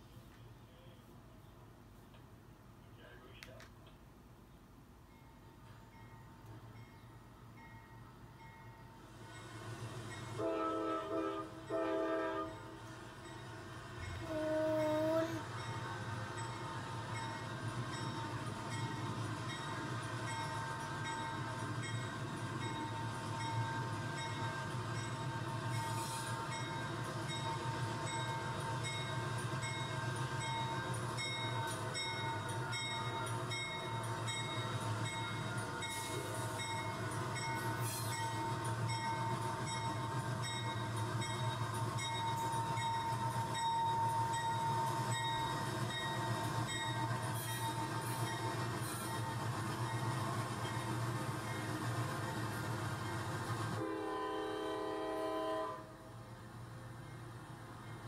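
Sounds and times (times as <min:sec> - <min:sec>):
train running with whine: 0:00.0 - 0:58.0.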